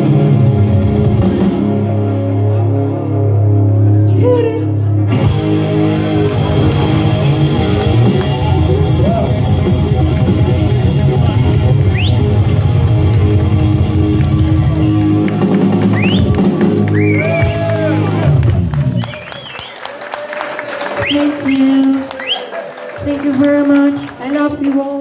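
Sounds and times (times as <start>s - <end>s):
live rock band playing: 0.0s - 4.1s, 4.9s - 19.3s
short rising whistles: 11.9s - 12.2s, 15.9s - 16.3s, 16.9s - 17.4s, 19.0s - 19.9s.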